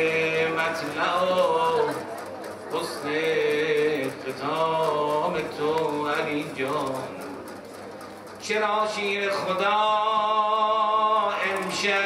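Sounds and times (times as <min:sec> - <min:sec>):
man chanting: 0:00.0 - 0:02.0, 0:02.7 - 0:07.3, 0:08.4 - 0:12.0.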